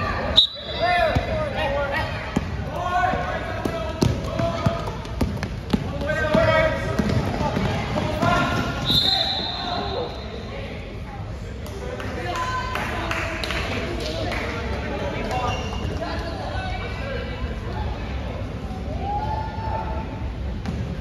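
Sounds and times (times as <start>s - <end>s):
referee's whistle: 0.4s - 0.9s, 8.8s - 10.2s
basketball bouncing on court: 2.3s - 9.0s.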